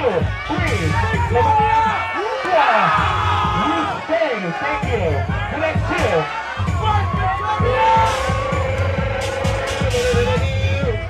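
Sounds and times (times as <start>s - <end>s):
dance track with heavy bass beat: 0.0s - 11.0s.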